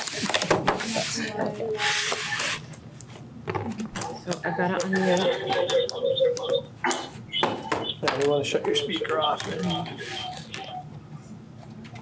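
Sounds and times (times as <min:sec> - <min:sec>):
low voices murmuring: 0:03.6 - 0:10.9.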